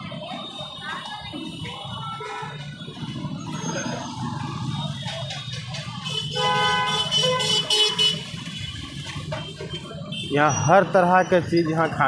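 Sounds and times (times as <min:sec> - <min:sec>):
engines running hum: 0:00.0 - 0:10.2
vehicle horns honking: 0:00.6 - 0:04.0, 0:06.0 - 0:10.7.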